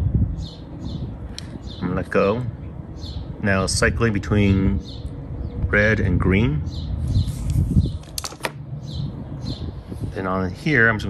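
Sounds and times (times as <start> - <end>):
plastic device handling noise: 7.4 - 8.6.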